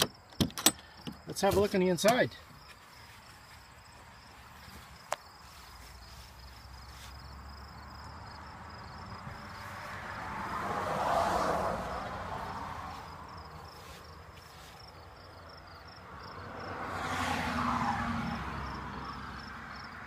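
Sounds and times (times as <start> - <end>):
insects chirping: 0.0 - 20.0.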